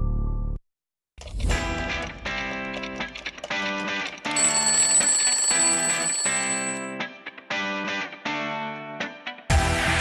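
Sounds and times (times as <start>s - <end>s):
alarm clock bell ringing: 4.3s - 7.0s.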